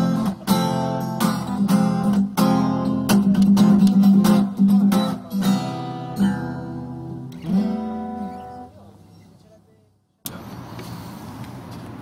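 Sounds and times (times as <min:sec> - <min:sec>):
distant city traffic hum: 0:06.8 - 0:12.0.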